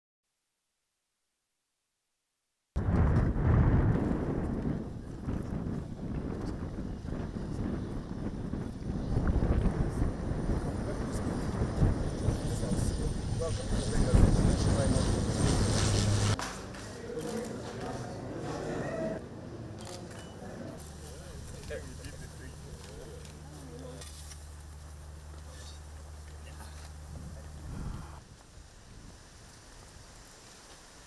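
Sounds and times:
wind rumble on microphone: 2.8 - 16.4, 27.0 - 30.4
propeller aircraft flying overhead: 5.6 - 17.2, 20.9 - 28.2
steady high whine: 9.2 - 16.4.

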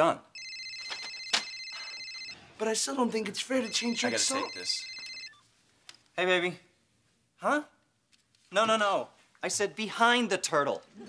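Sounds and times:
phone ringtone: 0.4 - 2.4, 3.6 - 5.4.

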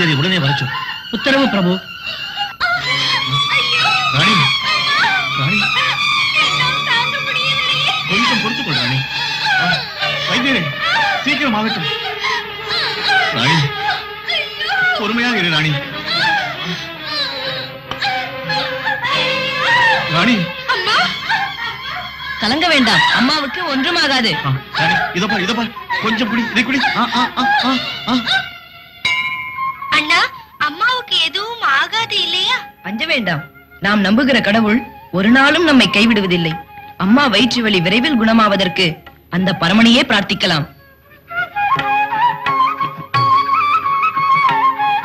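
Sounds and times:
wavering wailing voice: 0.0 - 45.0.

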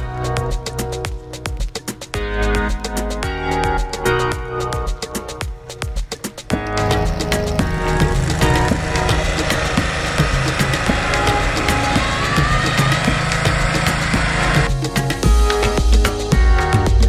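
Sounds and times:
background music: 0.0 - 17.0
snow blower engine running: 6.5 - 15.2.

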